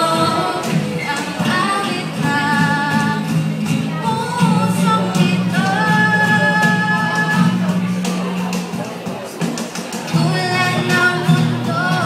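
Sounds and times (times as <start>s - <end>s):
girls singing together: 0.0s - 7.2s
acoustic guitar: 0.0s - 12.0s.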